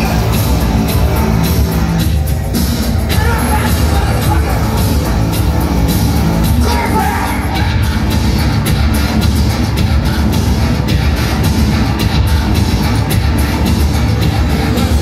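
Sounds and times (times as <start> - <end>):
industrial metal band playing live: 0.0 - 15.0.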